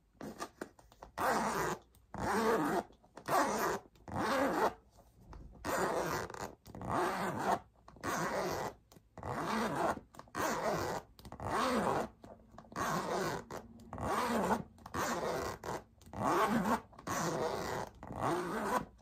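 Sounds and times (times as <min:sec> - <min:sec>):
handbag zipper rasping: 0:01.2 - 0:04.8, 0:05.6 - 0:19.0.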